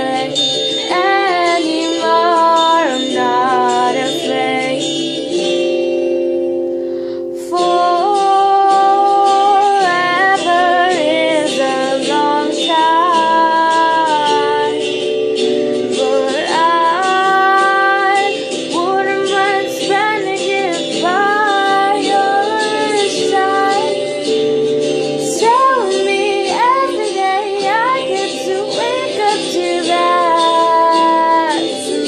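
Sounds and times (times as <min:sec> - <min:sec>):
woman singing wordless notes: 0:00.0 - 0:32.0
steady musical accompaniment: 0:09.7 - 0:32.0.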